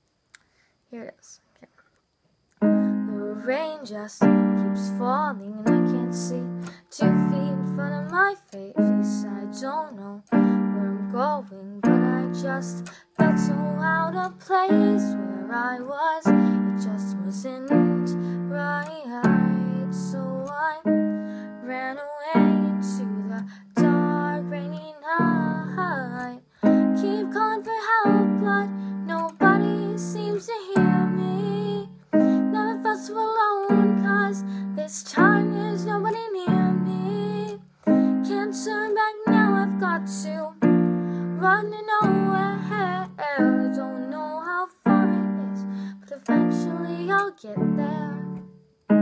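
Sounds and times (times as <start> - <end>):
girl singing: 0.9 - 1.7, 2.6 - 49.0
piano chords on keyboard: 2.6 - 3.6, 4.2 - 15.7, 16.3 - 49.0.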